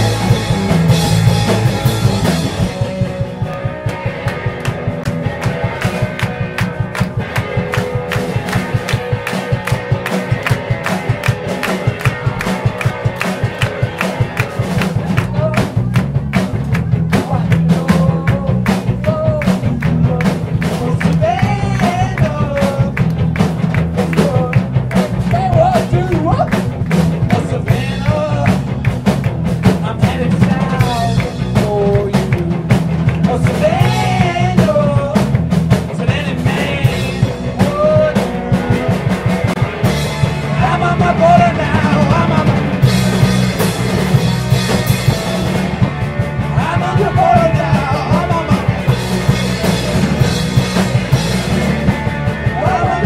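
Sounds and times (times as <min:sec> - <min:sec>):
live rock band playing: 0:00.0 - 0:53.0.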